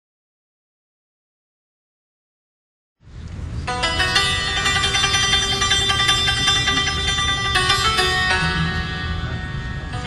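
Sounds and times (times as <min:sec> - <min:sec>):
hammered dulcimer fast runs: 0:03.7 - 0:10.0.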